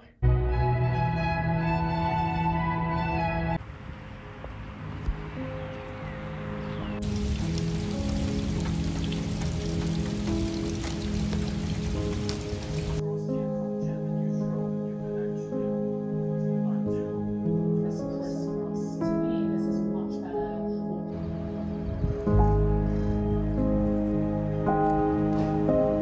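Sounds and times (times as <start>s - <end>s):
soft background music: 0.0s - 26.0s
rain falling on pavement: 3.8s - 13.0s.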